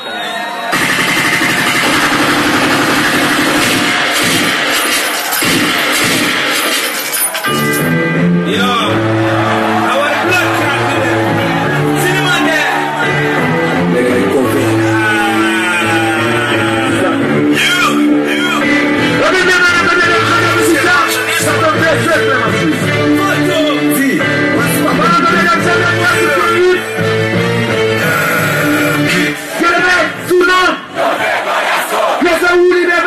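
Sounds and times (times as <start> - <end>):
distorted live concert music: 0.0 - 30.8
concert crowd: 0.0 - 33.0.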